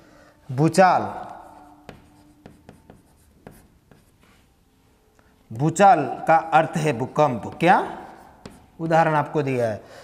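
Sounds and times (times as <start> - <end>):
chalk tapping and scratching on board: 1.2 - 4.5, 7.2 - 9.4.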